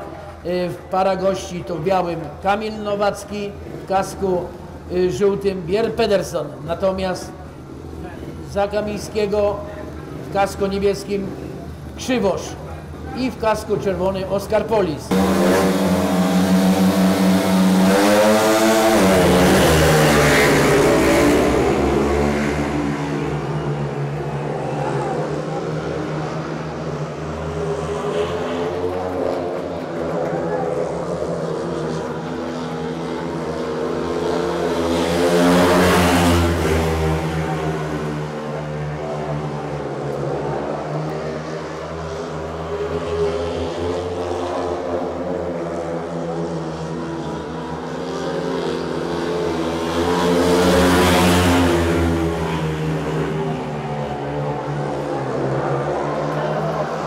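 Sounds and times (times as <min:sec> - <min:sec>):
motorcycle engines racing: 0:00.0 - 0:57.0.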